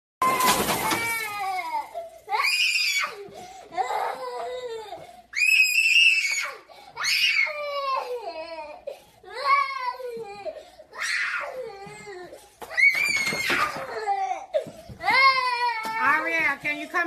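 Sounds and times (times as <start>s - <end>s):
wooden display crashing over: 0.2s - 1.6s
girl screaming and wailing: 0.2s - 16.2s.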